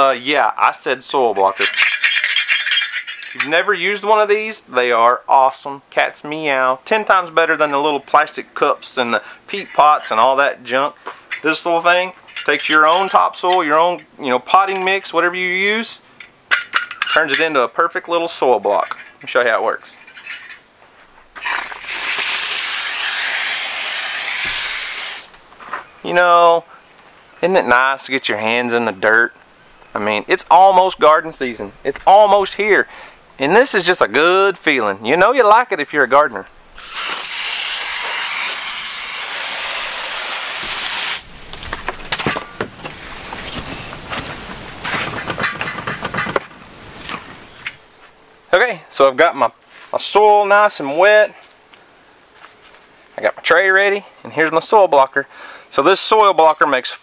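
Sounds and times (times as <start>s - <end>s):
hand claw scraping wet soil: 21.4s - 25.3s
water spraying from hose: 21.4s - 25.3s, 36.8s - 41.3s.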